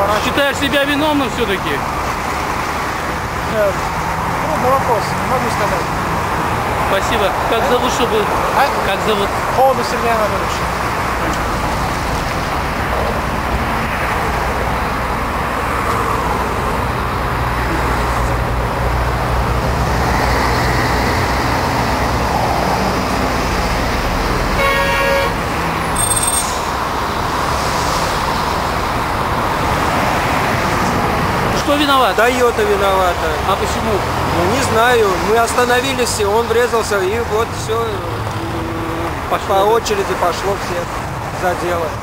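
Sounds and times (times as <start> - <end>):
highway traffic: 0.0 - 42.0
car horn toot: 24.6 - 25.4.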